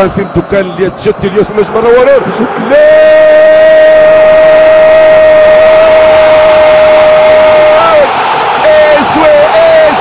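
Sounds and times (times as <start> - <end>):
stadium crowd noise: 0.0 - 10.0
commentator shouting: 1.4 - 10.0.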